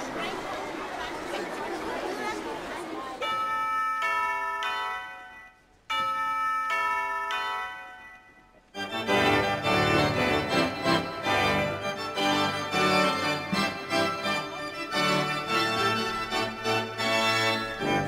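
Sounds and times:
held chords: 0:03.2 - 0:18.0
pipe organ with deep bass: 0:08.8 - 0:18.0.

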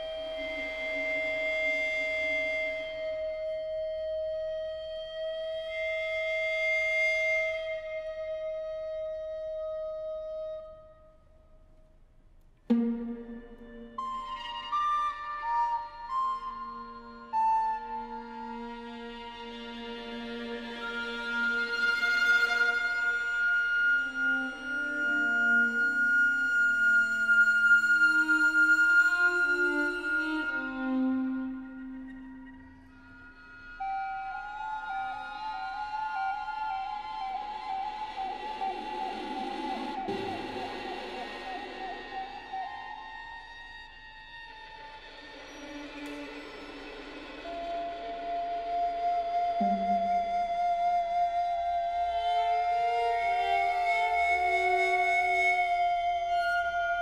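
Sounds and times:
sustained string chords: 0:12.7 - 0:14.4, 0:49.6 - 0:50.4
recorder holding high notes: 0:49.6 - 0:50.6.

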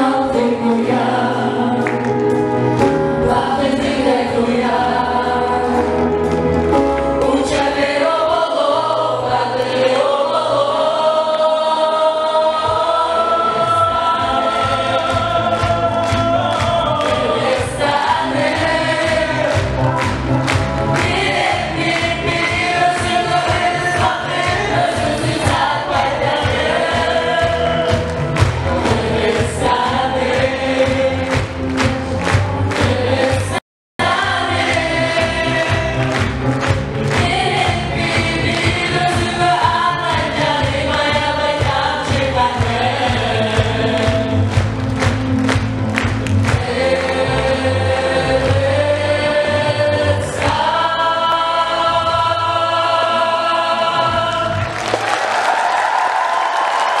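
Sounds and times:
group singing over backing music: 0:00.0 - 0:55.0
crowd clapping along: 0:00.3 - 0:08.4, 0:14.2 - 0:49.2, 0:50.2 - 0:51.1, 0:54.2 - 0:57.0.

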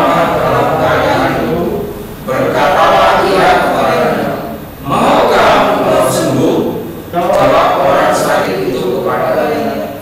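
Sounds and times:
congregation reading aloud in unison: 0:00.0 - 0:10.0.

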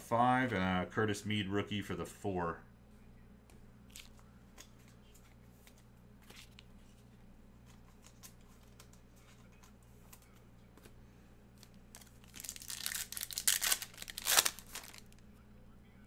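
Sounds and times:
foil wrapper tearing and crinkling: 0:11.9 - 0:15.2.

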